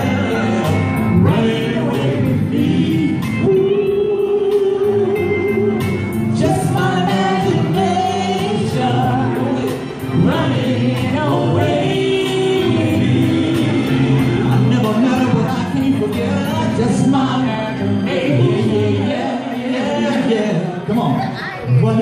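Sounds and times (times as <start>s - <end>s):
male vocal group singing in harmony: 0.0s - 21.2s
backing music: 0.0s - 22.0s.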